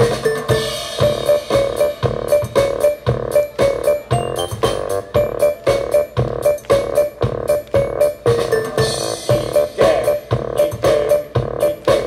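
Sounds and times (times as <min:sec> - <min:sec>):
drum kit steady beat: 0:00.0 - 0:12.0
repeated synthesizer notes: 0:00.0 - 0:12.0.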